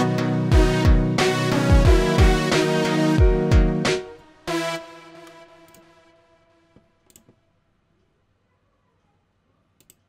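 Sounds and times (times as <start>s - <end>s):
faint computer mouse clicks: 7.0s - 7.4s, 9.8s - 10.0s.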